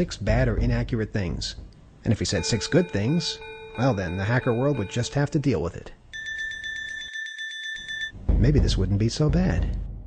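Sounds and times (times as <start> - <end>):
electronic bell ringing: 2.3 - 5.4, 6.1 - 8.2.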